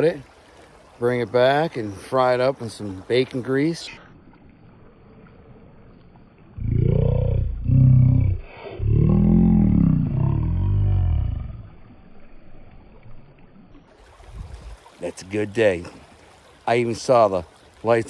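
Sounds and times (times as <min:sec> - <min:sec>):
deep drawn-out growling: 0:06.6 - 0:12.0.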